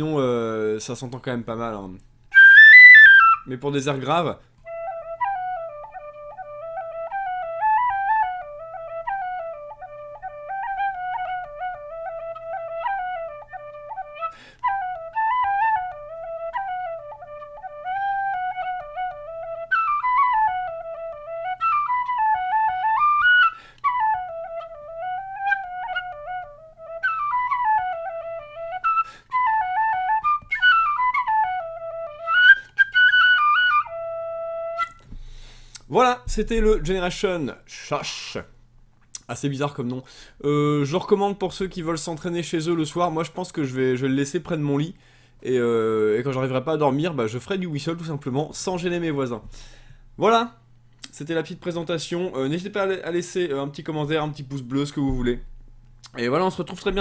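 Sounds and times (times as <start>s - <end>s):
tin whistle playing a tune: 2.3s - 3.5s, 4.6s - 35.8s.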